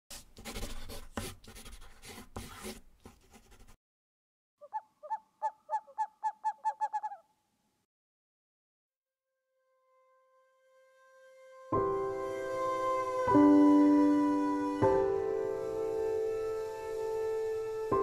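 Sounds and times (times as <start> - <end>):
scratchy pen-stroke rubbing: 0.1 - 3.8
short gliding pitched calls: 4.6 - 7.4.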